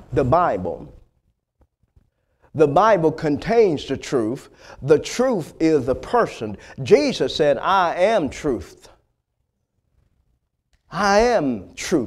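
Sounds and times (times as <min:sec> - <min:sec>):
man speaking: 0:00.0 - 0:01.0, 0:02.5 - 0:09.0, 0:10.9 - 0:12.0
man breathing: 0:04.5 - 0:04.8.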